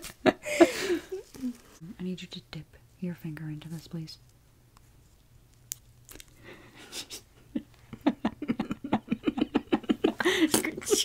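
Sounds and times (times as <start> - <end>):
woman giggling: 0.2 - 1.6, 6.8 - 11.0.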